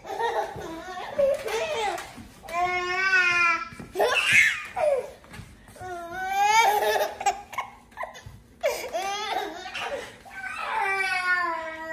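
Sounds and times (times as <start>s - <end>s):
baby laughing: 6.6s - 10.2s.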